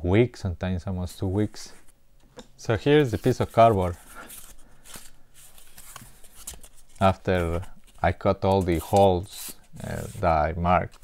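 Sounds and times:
cardboard rustling and scraping: 3.0s - 11.0s.

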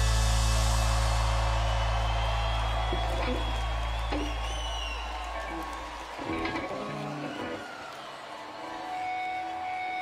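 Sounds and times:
crowd cheering: 0.0s - 10.0s
long high whistle: 1.6s - 5.2s.

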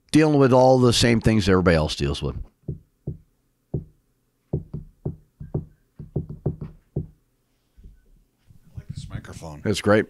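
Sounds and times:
knocks on handheld microphone: 4.6s - 7.2s.

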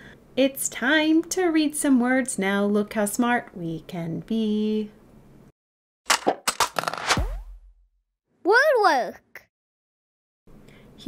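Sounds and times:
sharp percussive hits: 6.1s - 7.9s.

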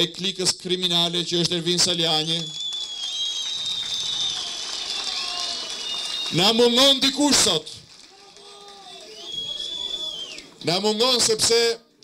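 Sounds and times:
audience clapping: 2.3s - 10.6s.

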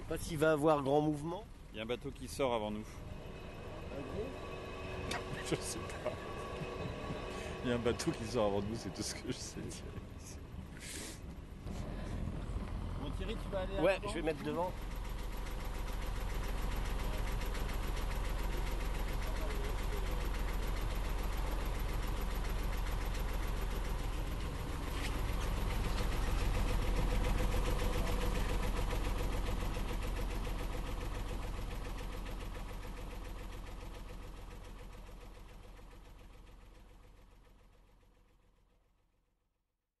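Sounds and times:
diesel engine running: 0.0s - 38.7s.

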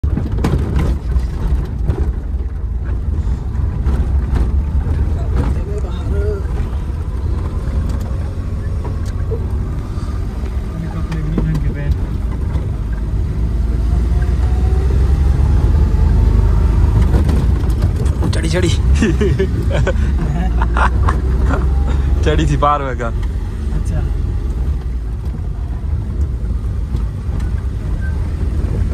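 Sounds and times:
car engine rumble from inside: 0.0s - 28.9s
knocks and rattles over rough road: 0.0s - 28.9s.

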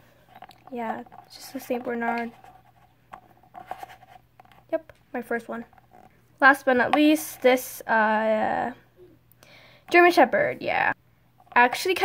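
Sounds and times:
plastic toy clicks and scratches: 0.4s - 4.7s.

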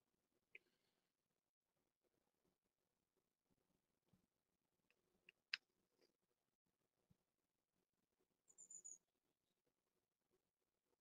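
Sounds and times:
faint high-pitched chirp: 8.4s - 9.6s.

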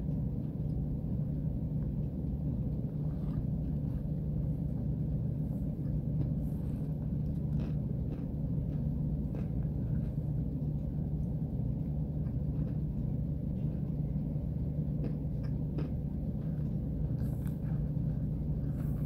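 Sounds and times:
chewing clicks: 5.6s - 19.0s.

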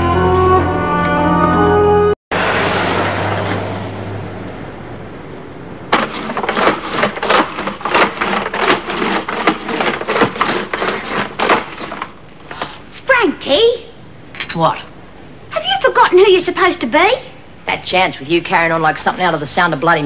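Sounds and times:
sharp wooden knocks: 5.9s - 12.6s.

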